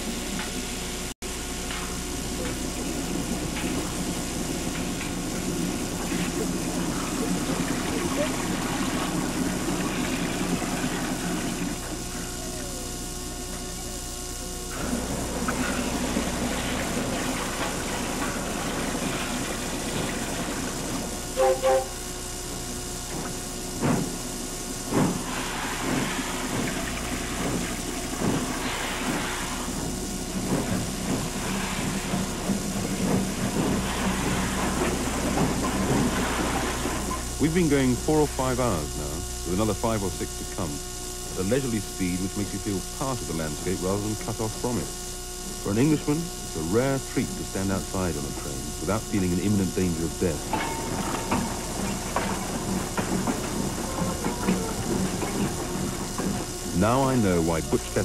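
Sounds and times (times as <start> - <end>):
brief pitched tone: 21.4 - 22.0
train clanks and knocks: 22.5 - 24.2, 24.8 - 37.3, 50.4 - 57.5
train rumbling: 24.8 - 39.7, 49.7 - 58.0
people's voices: 56.8 - 58.0.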